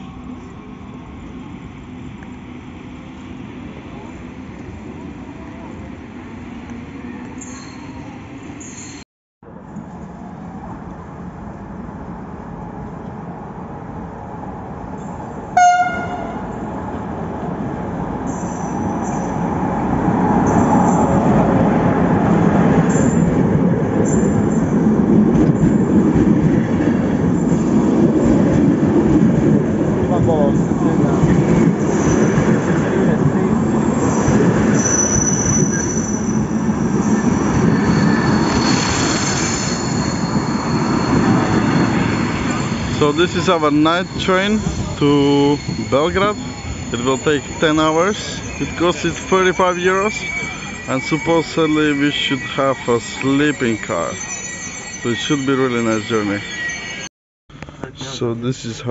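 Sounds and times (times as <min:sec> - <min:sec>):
train squealing: 0:06.8 - 0:09.0, 0:14.9 - 0:17.0, 0:18.0 - 0:57.1
train rumbling past: 0:09.6 - 0:57.1
train horn blast: 0:15.6 - 0:16.7.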